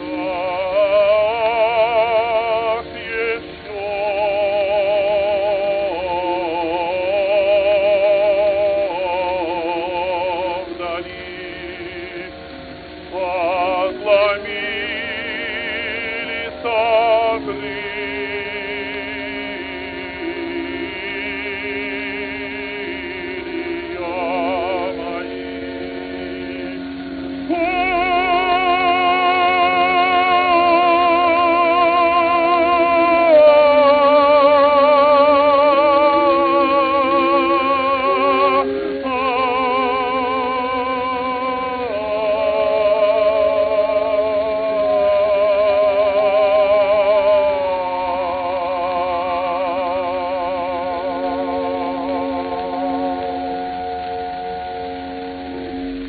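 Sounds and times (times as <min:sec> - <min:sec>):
operatic tenor singing: 0:00.0 - 0:55.8
accompaniment holding chord: 0:00.0 - 0:56.0.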